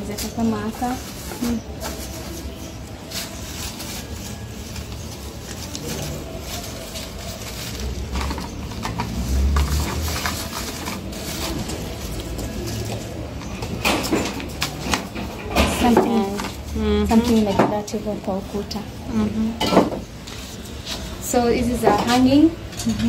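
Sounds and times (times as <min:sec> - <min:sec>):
rustling of artificial flowers: 0:00.0 - 0:23.0.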